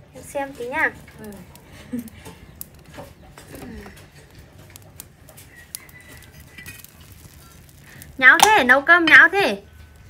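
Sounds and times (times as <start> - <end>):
low voices: 1.1 - 4.5.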